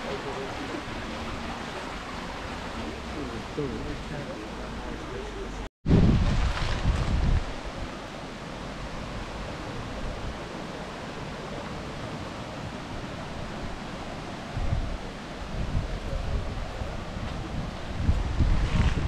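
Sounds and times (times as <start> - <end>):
stream flowing over gravel: 0.0 - 19.0
wind rumbling on microphone: 0.0 - 19.0.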